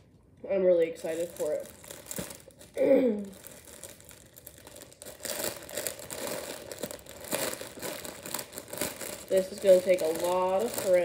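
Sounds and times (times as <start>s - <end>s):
plastic packaging crinkling: 0.8s - 11.0s.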